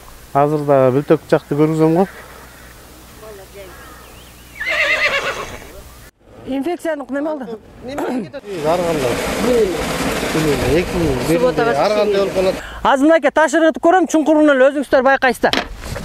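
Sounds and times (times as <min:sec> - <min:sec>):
people talking: 0:00.3 - 0:02.2, 0:03.2 - 0:03.9, 0:06.5 - 0:15.6
high wavering cry: 0:03.7 - 0:06.1
water gushing from truck outlet: 0:08.4 - 0:12.6.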